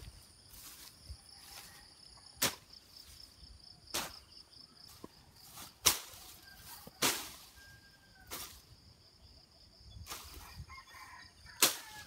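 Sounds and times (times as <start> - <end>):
leaves and grass swishing: 0.0 - 8.8, 10.0 - 10.7, 11.5 - 12.0.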